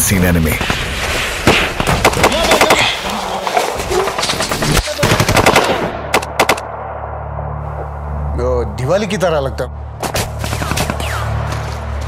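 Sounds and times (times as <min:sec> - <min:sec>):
automatic gunfire: 0:04.4 - 0:06.6.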